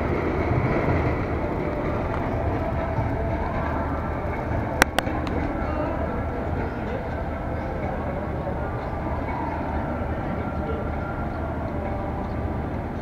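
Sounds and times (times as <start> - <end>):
train rumbling on tracks: 0.0 - 13.0.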